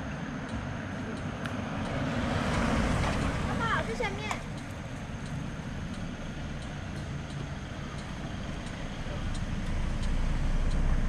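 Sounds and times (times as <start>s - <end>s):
road noise: 0.0s - 11.0s
vehicle engine rumble: 0.0s - 11.0s.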